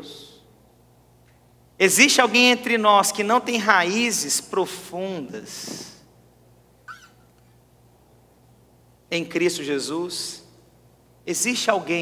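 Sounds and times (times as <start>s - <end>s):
steady low hum: 0.0s - 12.0s
faint high-pitched squeak: 6.9s - 7.2s.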